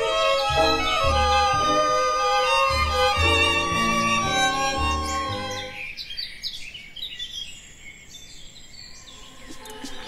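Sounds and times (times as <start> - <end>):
faint outdoor background noise: 0.0 - 10.0
small birds chirping: 0.0 - 10.0.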